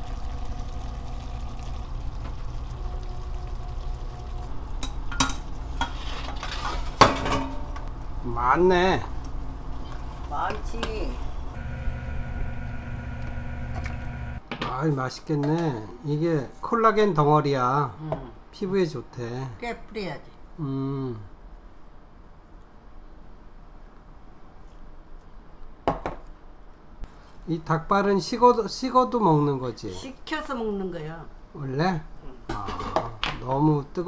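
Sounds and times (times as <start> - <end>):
low machine hum: 0.0 - 14.4
faint steady whine: 7.1 - 14.4.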